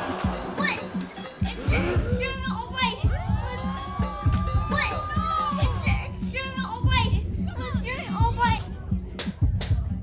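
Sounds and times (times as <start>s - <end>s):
electronic dance beat: 0.0s - 10.0s.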